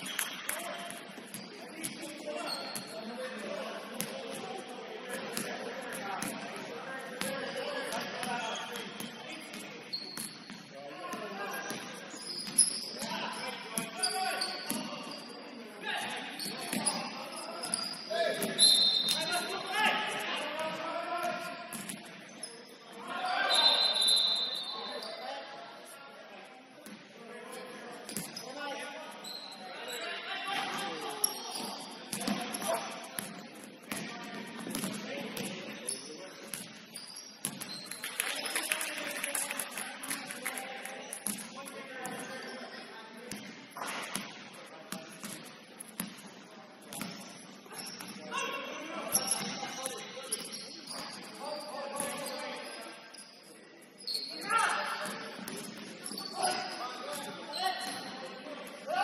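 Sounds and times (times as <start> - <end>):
sneaker squeaks: 0.0 - 3.2, 7.2 - 20.4, 21.2 - 25.9, 28.1 - 38.8, 46.9 - 58.9.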